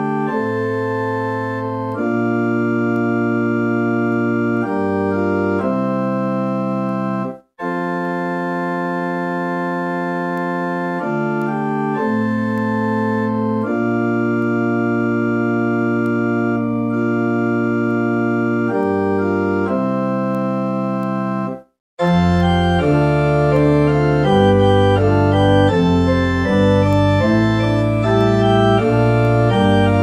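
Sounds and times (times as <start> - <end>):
organ playing sustained chords: 0.0 - 30.0.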